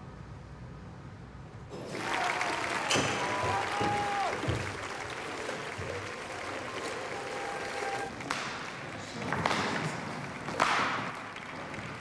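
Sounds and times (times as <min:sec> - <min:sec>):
audience applause: 0:01.7 - 0:10.6.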